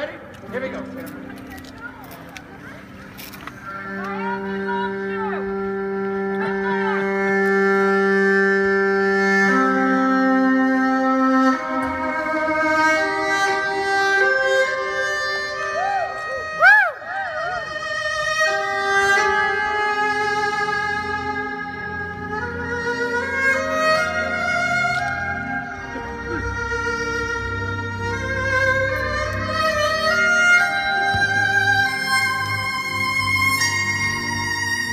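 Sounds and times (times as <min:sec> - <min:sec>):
solo violin melody: 0:02.8 - 0:34.9.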